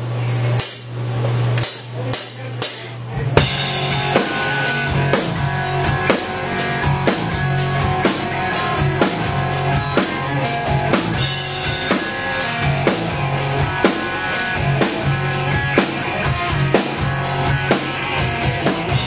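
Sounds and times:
live rock band: 0:01.6 - 0:19.0.

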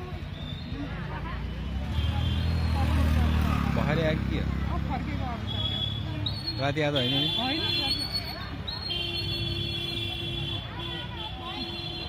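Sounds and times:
crowd voices outdoors: 0:00.0 - 0:12.0.

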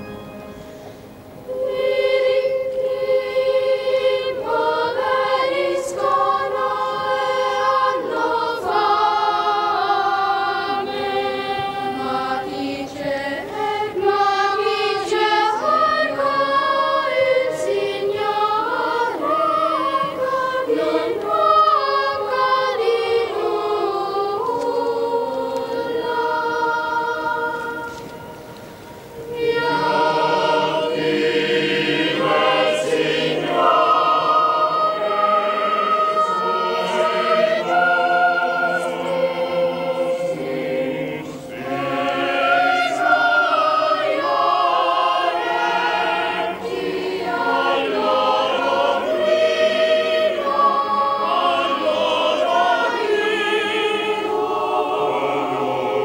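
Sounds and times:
choir singing sacred music: 0:00.0 - 0:56.0.

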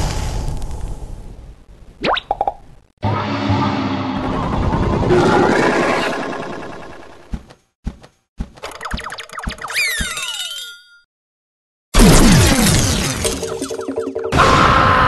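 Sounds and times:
sudden burst with falling tones: 0:03.0 - 0:07.3
springy cartoon effects: 0:08.6 - 0:11.0.

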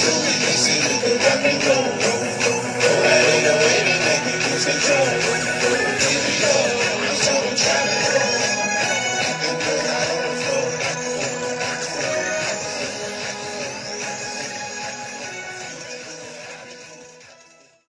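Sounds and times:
instrumental hip-hop beat: 0:00.0 - 0:17.8.

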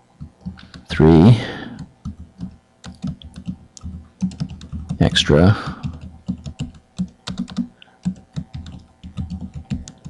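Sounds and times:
computer keyboard key clicks: 0:01.8 - 0:05.0, 0:05.8 - 0:10.0.

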